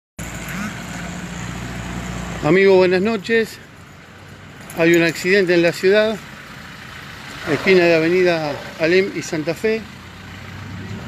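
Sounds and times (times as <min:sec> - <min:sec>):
street background noise: 0:00.2 - 0:11.0
vehicle engine humming: 0:00.2 - 0:11.0.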